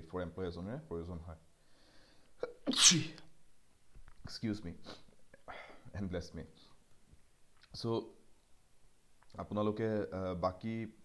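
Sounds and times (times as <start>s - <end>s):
man sneezing: 2.4s - 3.3s.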